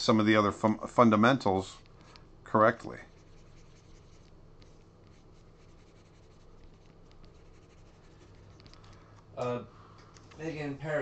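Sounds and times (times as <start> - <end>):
low steady hum: 0.0 - 11.0
stylus scratching on screen: 2.9 - 8.8.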